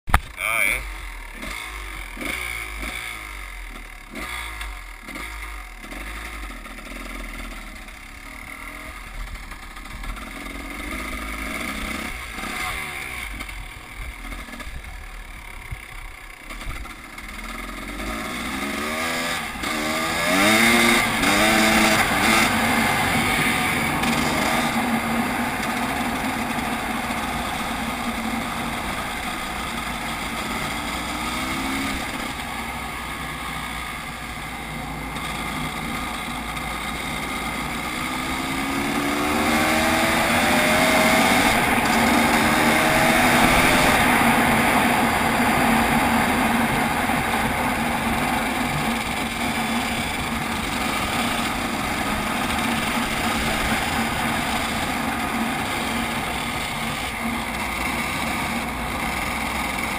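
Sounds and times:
dirt bike engine revving: 0.3s - 59.9s.

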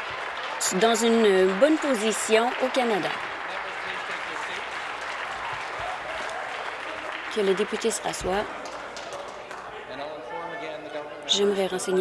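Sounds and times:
applause: 0.0s - 10.2s.

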